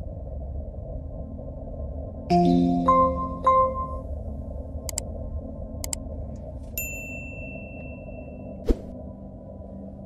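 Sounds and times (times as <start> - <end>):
steady low rumble: 0.0 - 10.0
bright electronic bell ping: 6.8 - 8.4.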